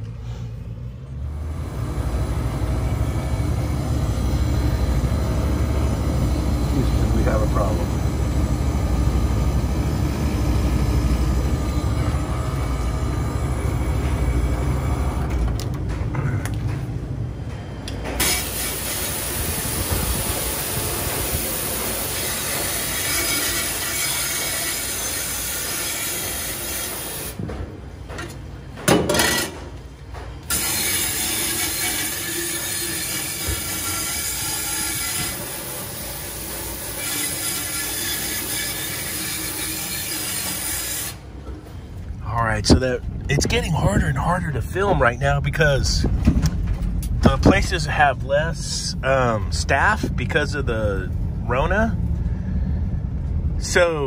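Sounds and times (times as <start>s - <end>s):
refrigeration equipment running: 0.0s - 54.0s.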